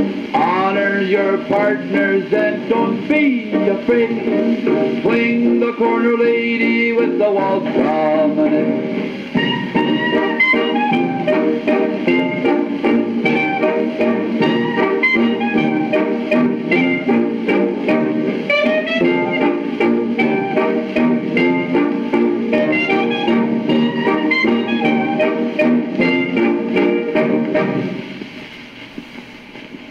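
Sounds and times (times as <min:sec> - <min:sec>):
old dance band playing waltz: 0:00.0 - 0:29.9.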